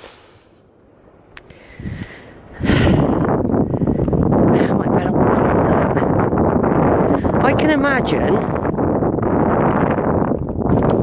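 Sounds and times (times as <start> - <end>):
wind buffeting microphone: 0.6 - 11.0.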